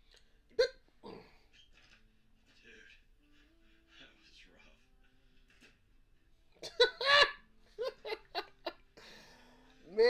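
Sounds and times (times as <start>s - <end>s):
person hiccuping: 0.5s - 1.2s
breathy sound: 9.0s - 9.8s.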